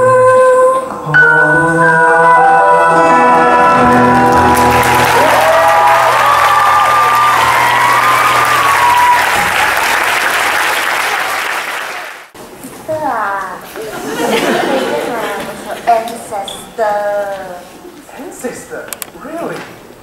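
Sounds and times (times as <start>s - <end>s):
audience applauding: 3.6s - 12.4s.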